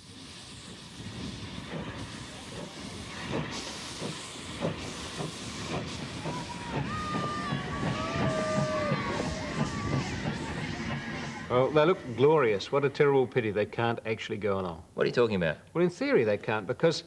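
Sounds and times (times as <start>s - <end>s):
locomotive exhaust chuffs: 0.0s - 12.0s
steam hissing: 0.0s - 12.8s.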